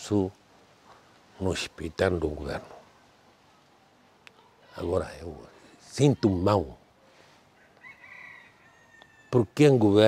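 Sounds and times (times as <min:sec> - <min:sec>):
rooster crowing: 0:07.6 - 0:09.7.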